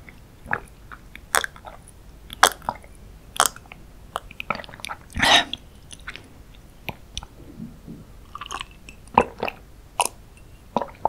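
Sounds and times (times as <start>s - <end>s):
person chewing and swallowing: 0.4s - 11.0s
wet mouth clicks: 1.2s - 1.6s, 2.3s - 2.8s.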